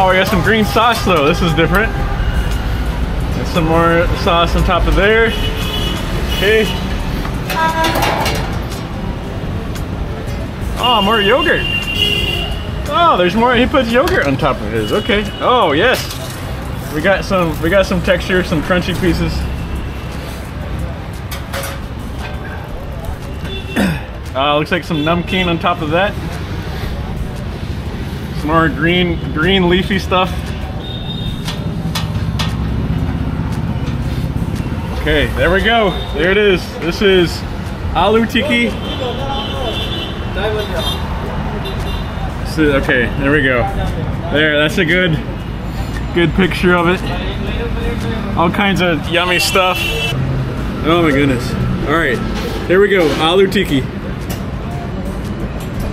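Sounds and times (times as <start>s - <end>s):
street traffic rumble: 0.0s - 55.9s.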